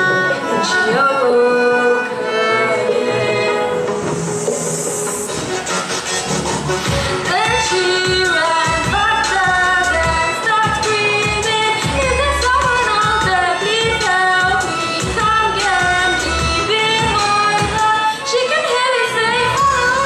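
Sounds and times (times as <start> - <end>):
woman singing: 0.0 - 3.9, 7.1 - 20.0
violin playing: 0.0 - 4.6.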